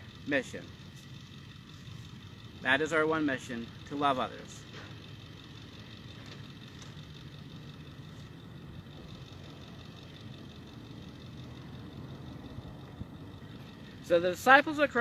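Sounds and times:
low outdoor rumble: 0.0s - 15.0s.

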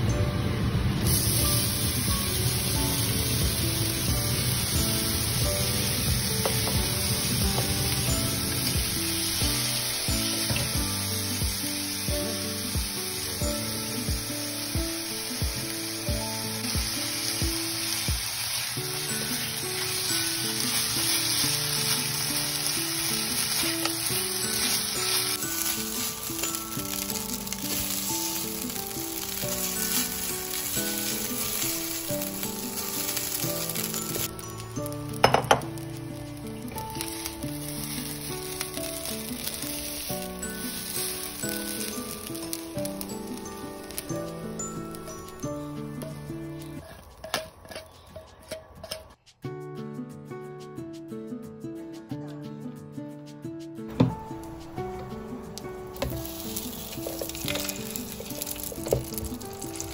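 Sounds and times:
rice sizzling in a frying pan: 0.0s - 47.8s, 54.1s - 59.9s
spatula turning rice: 17.2s - 35.3s, 36.6s - 42.8s, 46.0s - 49.1s, 56.0s - 59.9s.

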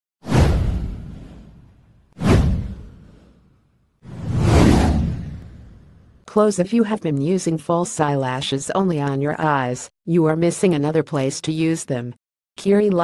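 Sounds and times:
deep boom: 0.3s - 3.4s, 4.1s - 6.2s
whoosh sound effects: 2.2s - 3.5s, 4.1s - 6.1s.

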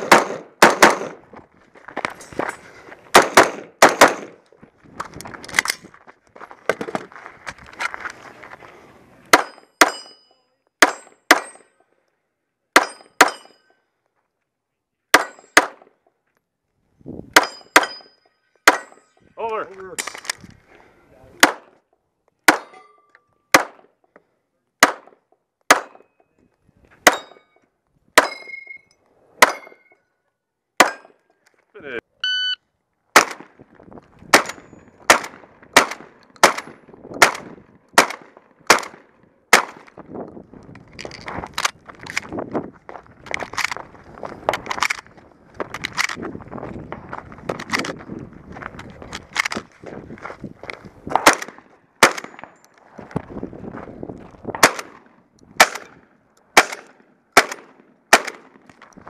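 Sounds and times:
pistol shots: 0.0s - 1.2s, 3.1s - 4.4s, 10.8s - 11.6s, 15.1s - 15.9s, 21.4s - 21.8s, 22.5s - 22.8s, 23.5s - 23.9s, 24.8s - 26.1s, 27.0s - 27.4s, 33.2s - 33.5s, 34.3s - 39.8s, 51.1s - 52.5s, 54.6s - 58.7s
rapid shotgun fire: 0.0s - 1.2s, 3.2s - 4.4s, 35.1s - 39.8s, 54.6s - 55.0s, 55.6s - 55.9s, 56.6s - 58.6s
steel targets ringing: 9.4s - 11.7s, 12.8s - 13.8s, 17.4s - 19.2s, 28.2s - 30.0s
shot timer beep: 32.2s - 32.6s.

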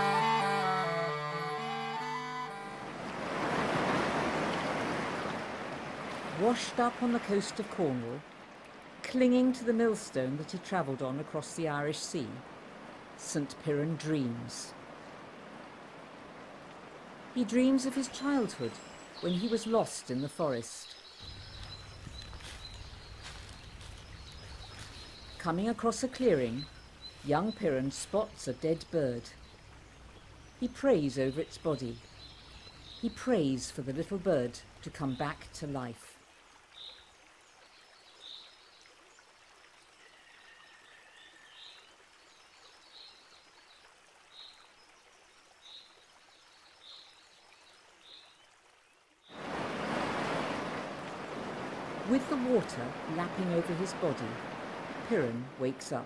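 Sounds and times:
background hiss: 0.0s - 56.0s
sea surf washing on beach: 2.8s - 9.0s, 49.3s - 56.0s.

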